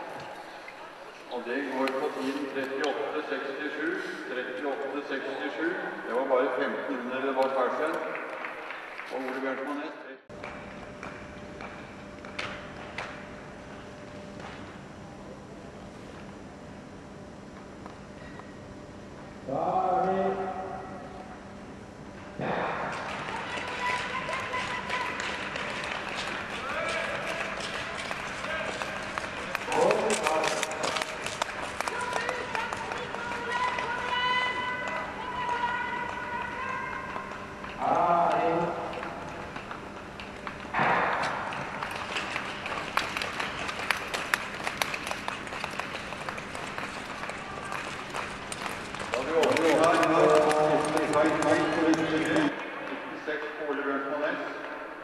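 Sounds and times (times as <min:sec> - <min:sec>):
loud shouts: 0:23.2 - 0:25.4, 0:31.8 - 0:37.2.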